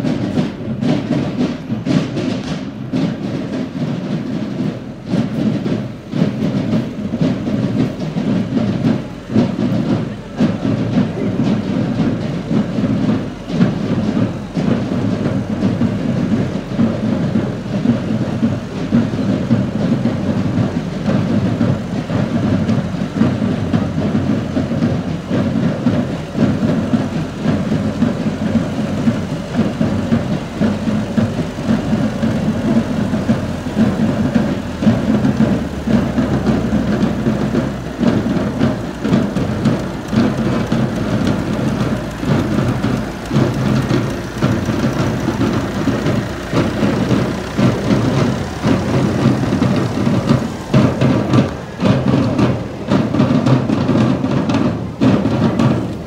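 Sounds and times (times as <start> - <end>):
tractor engine rumbling: 0.0 - 56.0.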